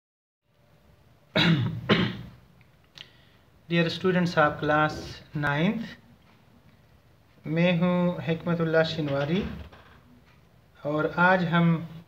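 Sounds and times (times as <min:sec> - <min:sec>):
man coughing: 0:01.3 - 0:02.4.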